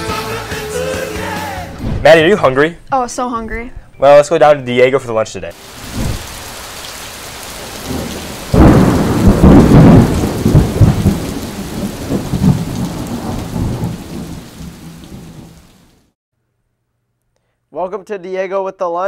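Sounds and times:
steady rain hiss: 0:05.5 - 0:16.2
loud thunderclap rumbling: 0:05.8 - 0:15.9.

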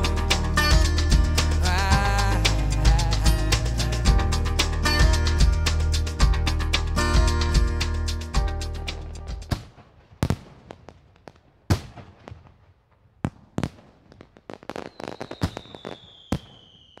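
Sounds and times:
music: 0:00.0 - 0:09.5
fireworks crackles: 0:08.9 - 0:17.0
fireworks bangs: 0:09.4 - 0:17.0
firework whistle sliding down: 0:14.8 - 0:17.0.

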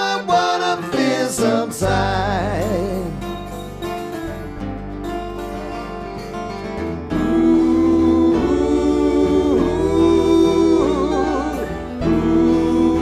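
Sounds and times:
acoustic guitars: 0:00.0 - 0:13.0
slide guitar: 0:00.0 - 0:13.0.

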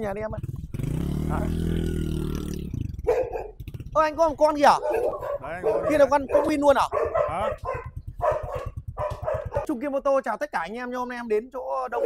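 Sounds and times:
small dog barking: 0:03.0 - 0:03.6, 0:04.7 - 0:09.7.

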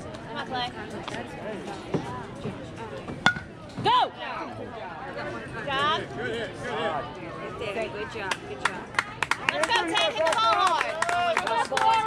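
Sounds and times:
background chatter: 0:00.0 - 0:12.0.

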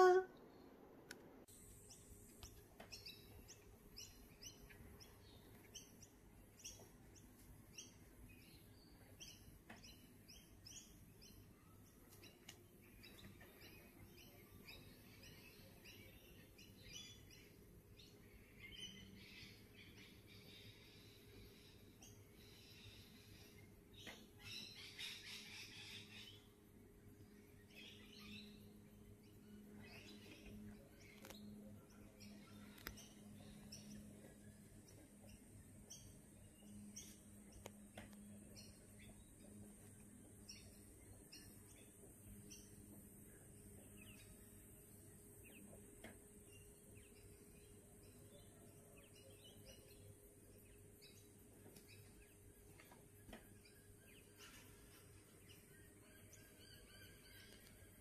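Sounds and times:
small birds chirping: 0:01.4 - 0:58.0.

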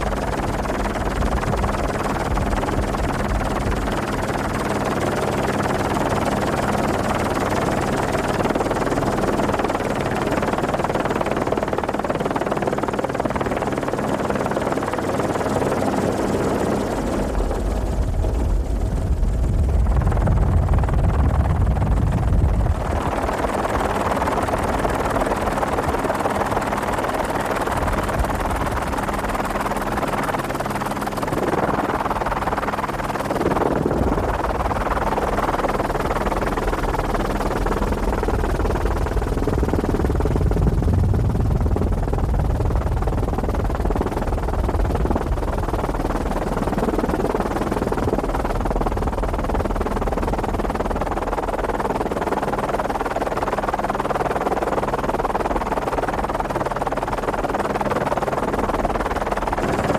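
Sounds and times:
helicopter engine and rotor drone: 0:00.0 - 0:59.9
deep rumble: 0:17.6 - 0:23.4.

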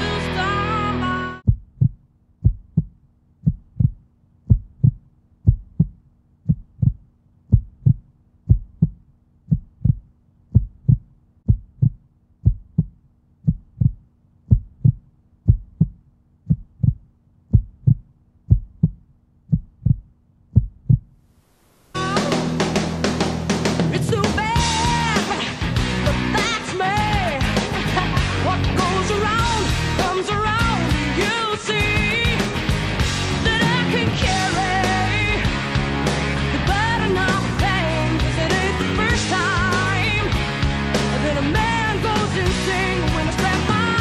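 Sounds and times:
heartbeat thumps: 0:01.4 - 0:21.2.

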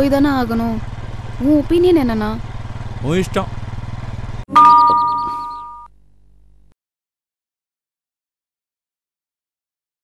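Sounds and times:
motorcycle engine running: 0:00.0 - 0:05.6
bell-like two-tone chime: 0:04.5 - 0:05.9.

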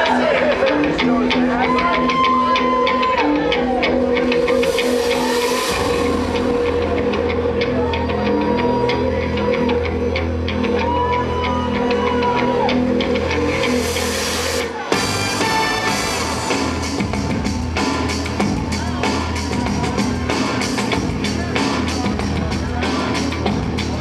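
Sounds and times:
loud rock music: 0:00.0 - 0:24.0
low bass part: 0:03.7 - 0:10.1.

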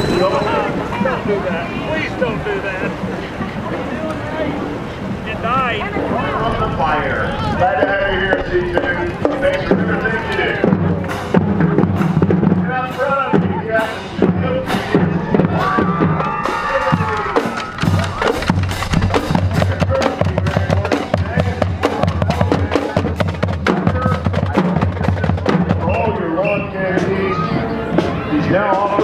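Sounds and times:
spectators' voices: 0:00.0 - 0:29.0
snare and bass drums: 0:07.8 - 0:27.2.

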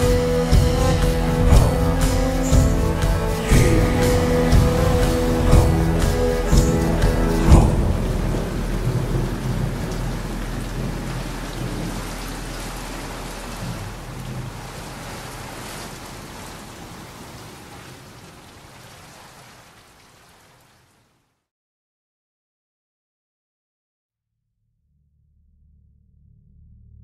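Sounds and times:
low music notes: 0:00.0 - 0:14.3
rain: 0:00.0 - 0:21.3.

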